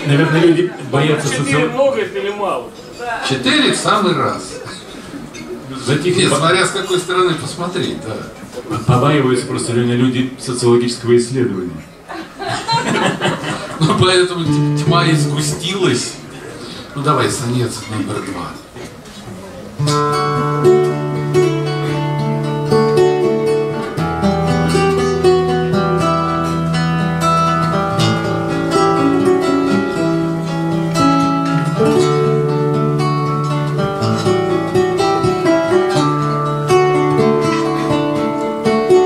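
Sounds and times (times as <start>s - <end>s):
fingerpicked acoustic guitars: 13.5s - 17.0s, 18.6s - 39.0s.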